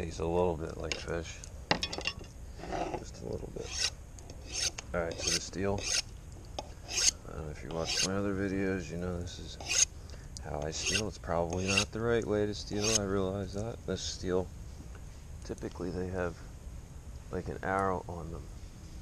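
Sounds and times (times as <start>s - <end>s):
knife scraping on honing rod: 2.6s - 6.1s, 6.8s - 8.2s, 9.5s - 9.9s, 10.6s - 12.0s, 12.7s - 13.1s.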